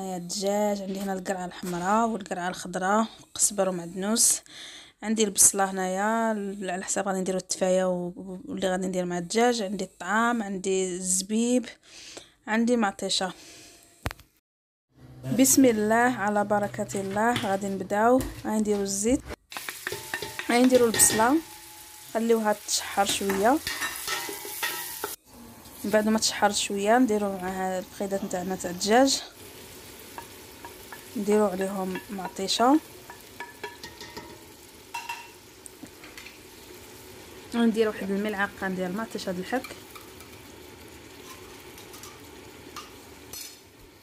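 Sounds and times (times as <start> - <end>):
onion sizzling in hot oil: 17.4 - 44.0
spoon clinking against pot: 19.6 - 21.8, 23.1 - 25.2, 33.0 - 35.4
wooden spoon stirring in pot: 29.4 - 34.4.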